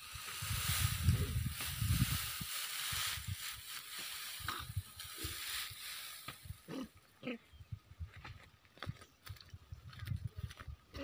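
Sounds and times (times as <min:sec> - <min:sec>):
dry straw rustling: 0:00.0 - 0:07.0.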